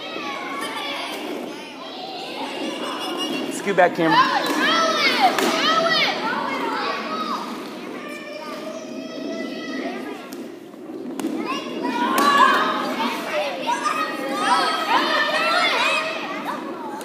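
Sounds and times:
children shouting: 0.0 - 10.5, 11.4 - 17.0.

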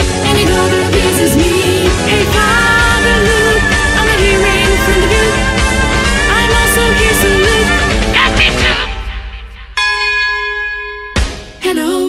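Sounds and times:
band music: 0.0 - 9.5
bell ringing: 9.8 - 11.6.

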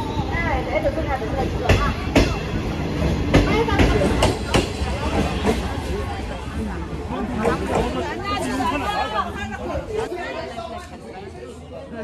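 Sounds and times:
train rolling past: 0.0 - 10.0.

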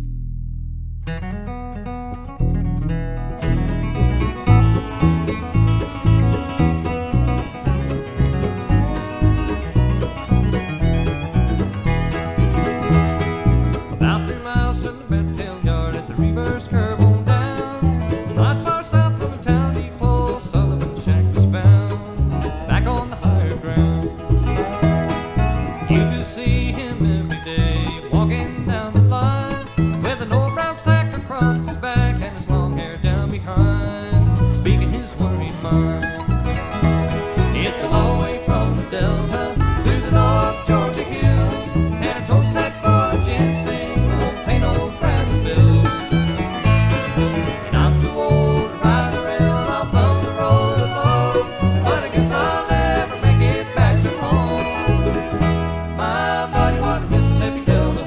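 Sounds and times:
guitar picking: 0.0 - 58.0
upright bass plucked: 0.0 - 58.0
banjo picking: 1.0 - 58.0.

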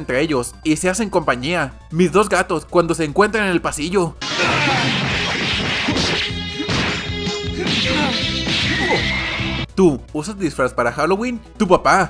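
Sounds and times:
background music: 0.0 - 12.0
punch and impact sound effects: 4.2 - 9.6.

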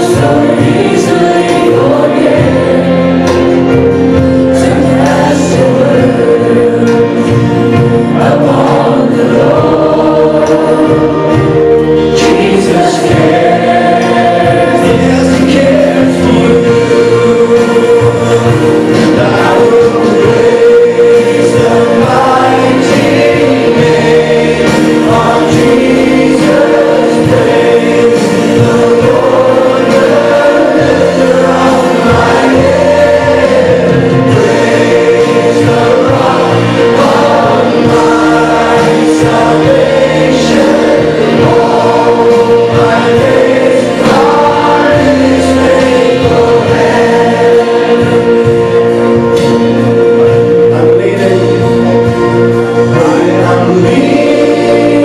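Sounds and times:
group singing worship song: 0.0 - 55.0
sustained accompaniment: 0.0 - 55.0.

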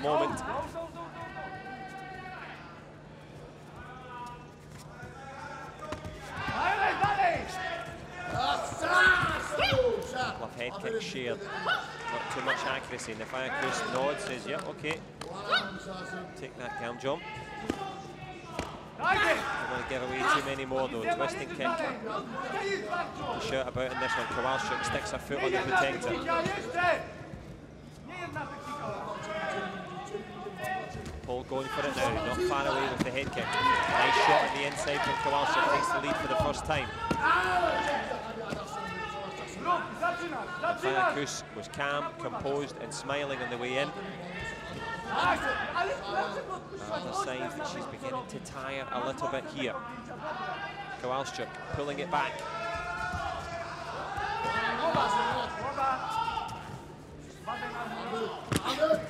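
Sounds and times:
people shouting: 6.3 - 10.3, 18.6 - 20.4, 31.6 - 38.2, 52.4 - 56.7.

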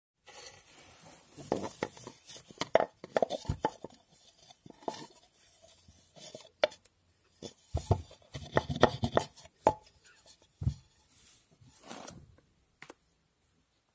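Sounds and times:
wooden pestle knocking in mortar: 7.8 - 9.8.

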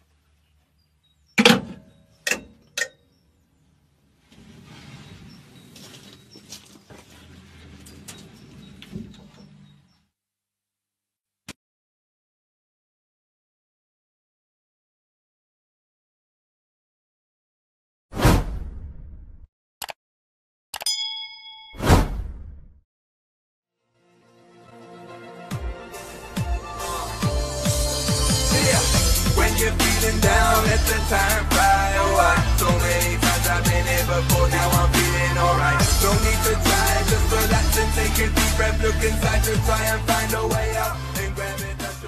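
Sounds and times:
sharp clunks: 1.4 - 3.0
whoosh with deep boom: 18.2 - 19.5
bell-like notification ding: 20.8 - 21.8.

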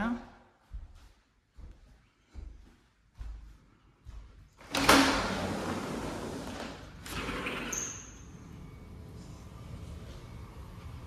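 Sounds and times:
sliding door rolling: 4.6 - 11.0.

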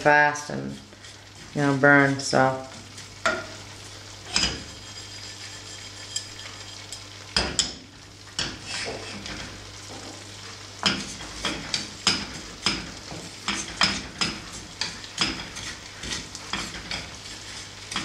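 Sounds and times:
seeds rustling in a skillet: 0.0 - 18.0.

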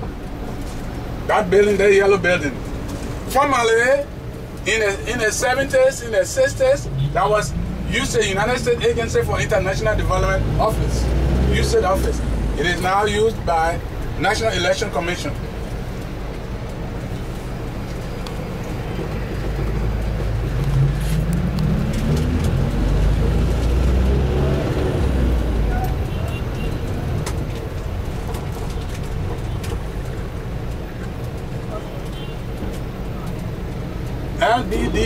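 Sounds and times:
bus engine: 0.0 - 35.0
road rumble: 0.0 - 35.0.

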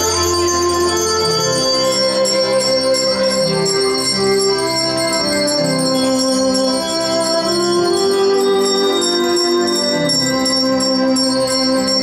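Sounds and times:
handbells ringing chords: 0.0 - 12.0.

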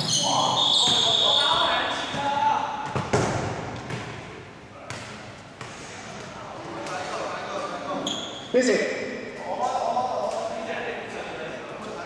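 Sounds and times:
basketball bouncing on floor: 2.1 - 4.2.

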